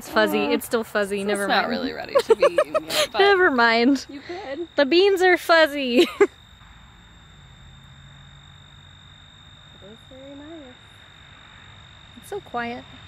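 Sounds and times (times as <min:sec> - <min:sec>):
high-pitched insect drone: 0:00.0 - 0:13.0.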